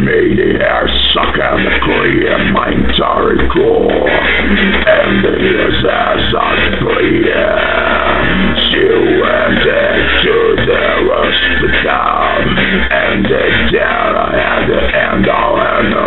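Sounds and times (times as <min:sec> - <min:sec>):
surf rock electric guitar music: 0:00.0 - 0:16.0.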